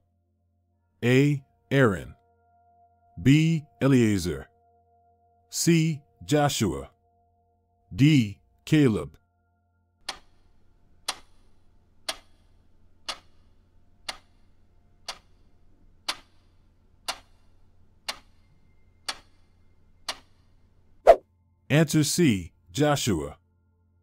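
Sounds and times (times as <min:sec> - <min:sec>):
countdown clock ticking: 0:10.0 - 0:20.5.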